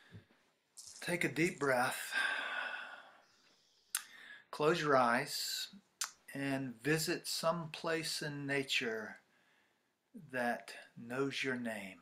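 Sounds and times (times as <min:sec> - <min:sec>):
person sighing: 0:02.1 - 0:04.1.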